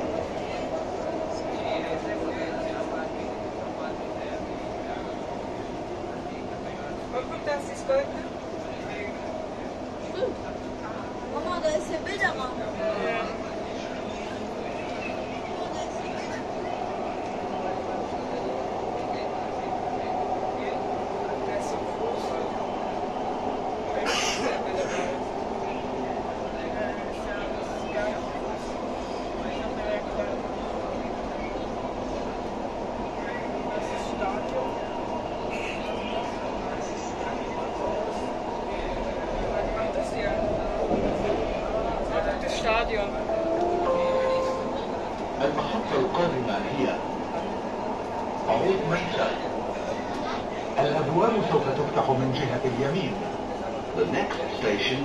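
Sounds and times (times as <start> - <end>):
train running with steady hum: 0.0 - 55.0.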